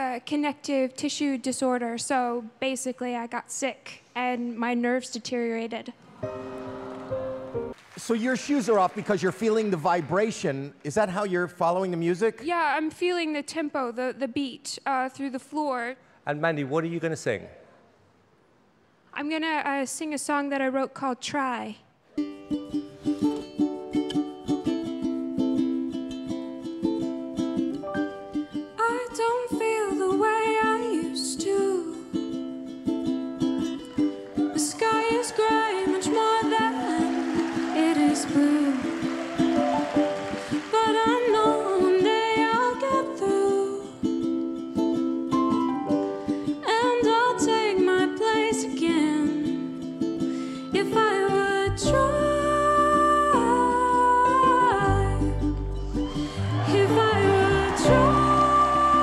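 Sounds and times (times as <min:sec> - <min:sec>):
ukulele playing: 0:06.2 - 0:07.8, 0:22.1 - 0:59.0
woman singing: 0:28.8 - 0:32.4, 0:34.4 - 0:39.2, 0:39.8 - 0:44.2, 0:46.4 - 0:49.7, 0:50.7 - 0:55.6, 0:56.2 - 0:59.0.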